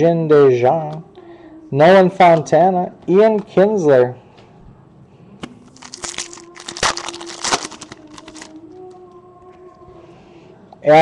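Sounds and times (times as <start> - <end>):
foil wrapper tearing and crinkling: 5.6 - 8.6.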